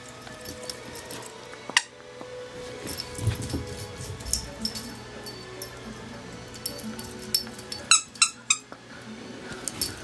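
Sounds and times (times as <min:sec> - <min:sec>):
dog tags jingling: 0:02.8 - 0:05.8, 0:06.5 - 0:08.5.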